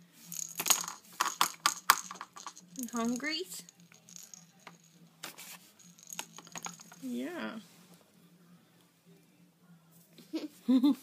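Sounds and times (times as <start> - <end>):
plastic baby rattle shaking: 0.3 - 7.1.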